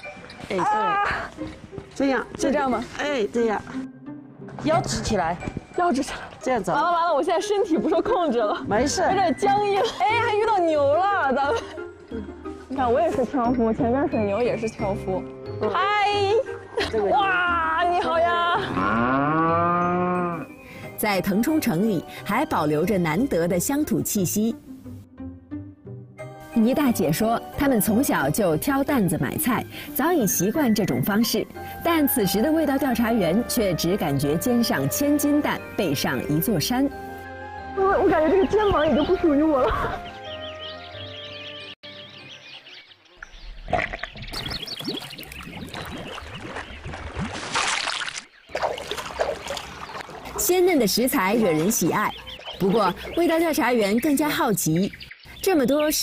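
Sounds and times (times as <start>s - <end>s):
soft music: 0.0s - 43.1s, 48.6s - 56.0s
water buffalo mooing: 18.6s - 20.5s
water sloshing and gurgling: 43.2s - 54.4s
water splash: 44.2s - 51.9s.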